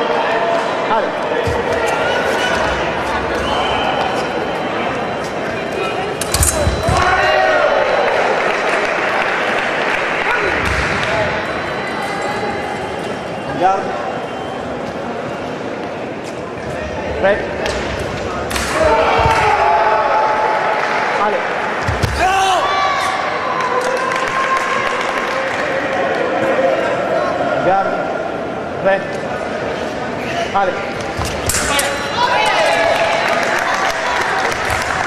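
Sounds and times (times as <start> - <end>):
voices shouting in echoing hall: 0.0 - 17.3, 18.5 - 35.0.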